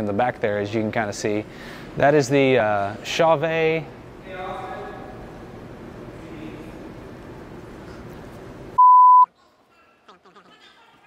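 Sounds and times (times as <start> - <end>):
steady background hiss: 0.0 - 11.0
mid-pitched censor beep: 8.8 - 9.3.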